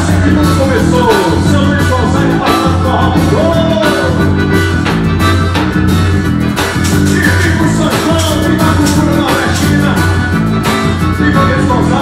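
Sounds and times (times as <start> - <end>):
live band with accordion: 0.0 - 12.0.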